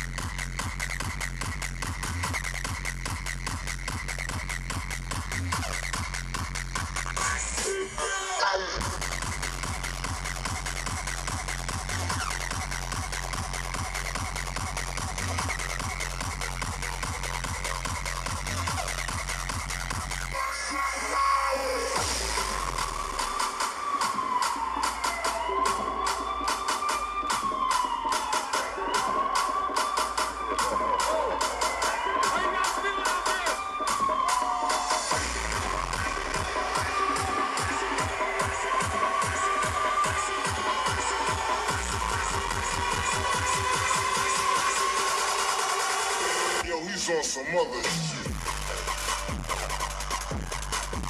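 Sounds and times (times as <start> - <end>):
electronic dance music: 0.0 - 51.0
held synth line: 22.0 - 45.6.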